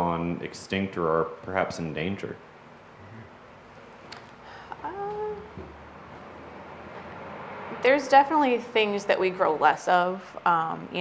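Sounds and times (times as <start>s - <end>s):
person saying uhhh: 3.0s - 3.3s, 4.7s - 5.5s.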